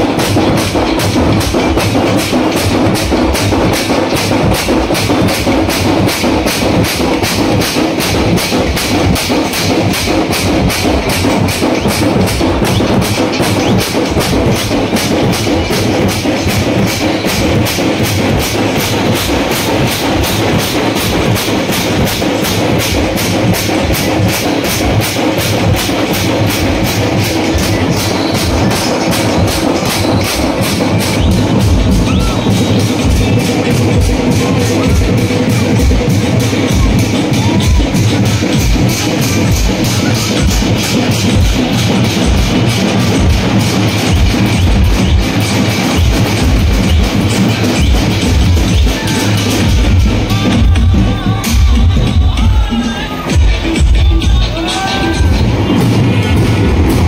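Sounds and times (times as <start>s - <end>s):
frame drums beaten with sticks: 0.0s - 57.0s.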